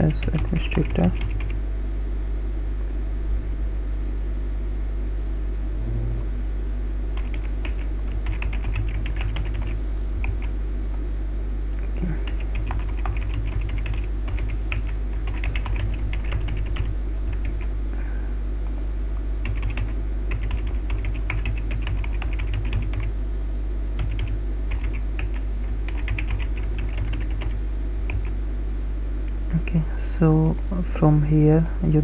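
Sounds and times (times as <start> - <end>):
steady low hum: 0.0 - 32.0
typing on computer keyboard: 0.2 - 1.6, 7.2 - 10.5, 12.2 - 17.7, 19.4 - 23.1, 24.0 - 28.3.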